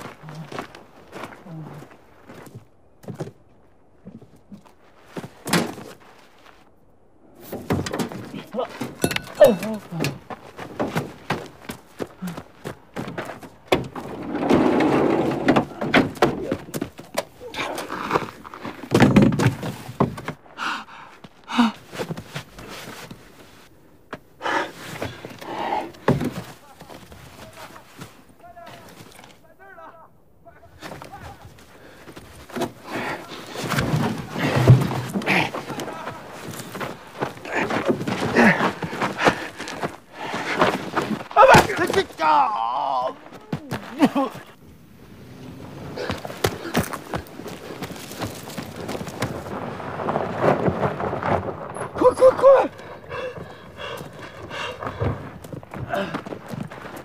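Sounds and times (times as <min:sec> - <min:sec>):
grunts and strained breaths: 0:00.0 - 0:02.0, 0:08.1 - 0:11.2, 0:11.9 - 0:13.2, 0:17.4 - 0:19.0, 0:20.5 - 0:22.7, 0:24.4 - 0:26.8, 0:30.6 - 0:41.8, 0:45.8 - 0:48.2, 0:51.9 - 0:56.9.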